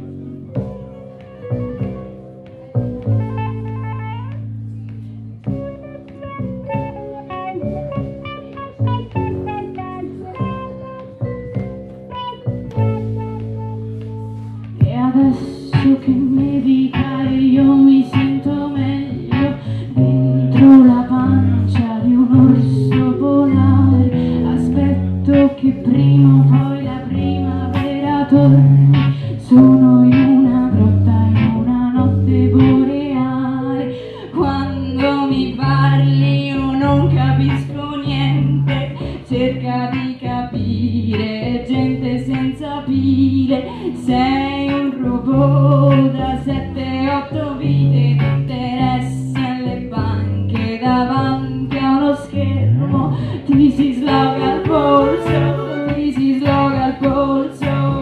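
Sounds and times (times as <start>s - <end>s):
drums: 0.0s - 33.1s, 52.8s - 58.0s
live band playing: 0.1s - 33.4s, 53.5s - 58.0s
woman singing: 14.6s - 58.0s.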